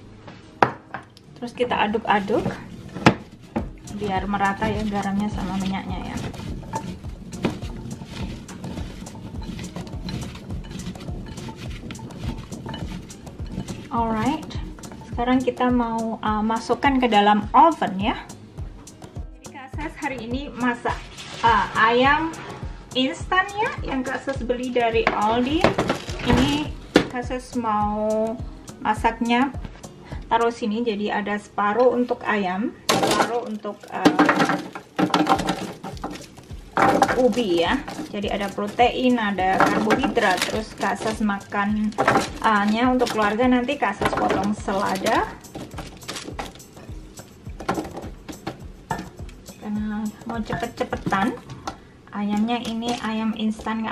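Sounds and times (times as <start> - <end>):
sweet potato pieces clacking in dish: 2.1 - 15.1, 32.9 - 53.9
paper rustle: 6.1 - 13.9, 39.5 - 41.2, 44.0 - 46.7.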